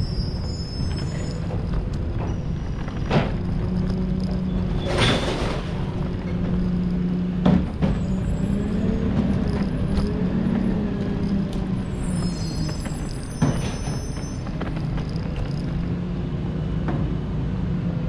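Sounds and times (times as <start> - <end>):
diesel engine humming: 0.0 - 18.0.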